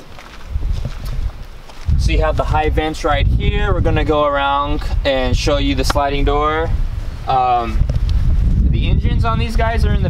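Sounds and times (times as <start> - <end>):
footsteps on grass: 0.0 - 2.5
wind rumble on microphone: 0.0 - 10.0
person speaking: 2.0 - 7.9.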